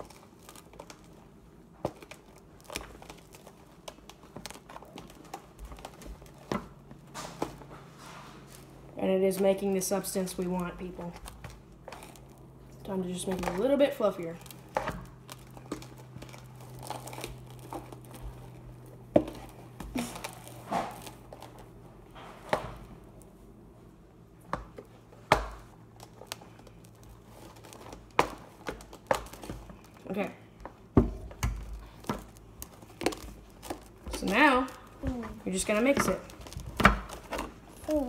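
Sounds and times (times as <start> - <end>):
slime crinkling and squishing: 0.0 - 38.0.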